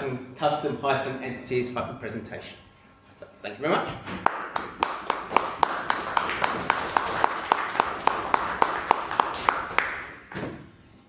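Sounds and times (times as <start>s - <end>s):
sharp even claps: 4.2s - 10.2s
audience applauding: 4.3s - 10.1s.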